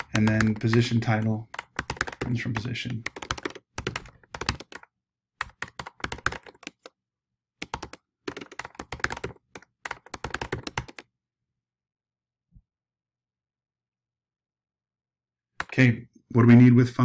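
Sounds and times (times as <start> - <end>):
computer keyboard typing: 0.0 - 6.9, 7.6 - 11.1, 15.6 - 15.9.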